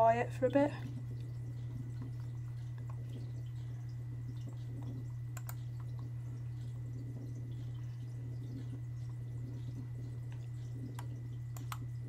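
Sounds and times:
low hum: 0.0 - 12.0
computer mouse clicks: 5.4 - 6.0, 11.0 - 11.8.

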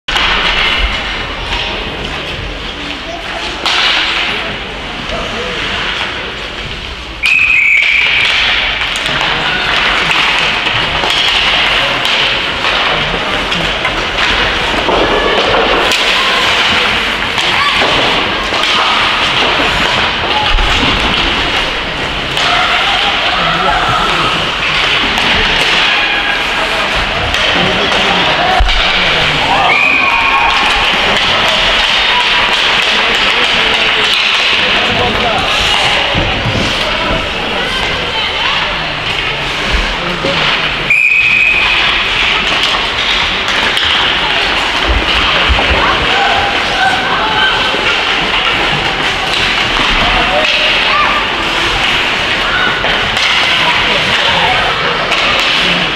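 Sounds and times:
people calling and shouting: 0.1 - 55.9
puck and sticks hitting boards: 0.1 - 55.9
referee's whistle blast: 40.9 - 41.6.

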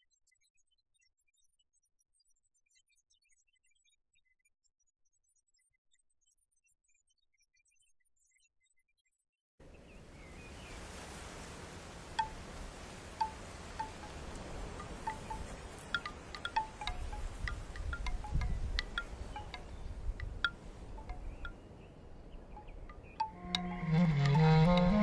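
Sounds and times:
wind blowing: 9.6 - 25.0
wind chimes ringing: 12.2 - 12.5, 13.2 - 25.0
soft music with held notes: 13.2 - 25.0.

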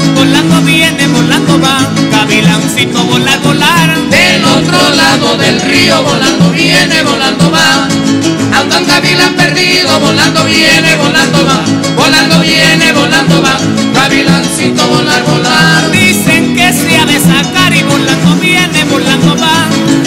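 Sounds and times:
latin dance music: 0.0 - 20.0.

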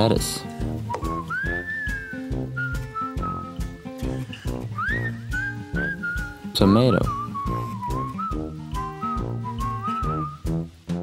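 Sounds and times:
plucked guitar with steady beat: 0.0 - 11.0
whistled melody: 0.6 - 10.7.

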